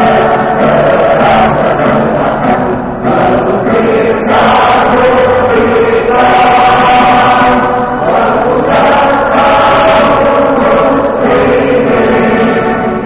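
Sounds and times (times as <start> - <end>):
crowd singing in unison: 0.0 - 13.0.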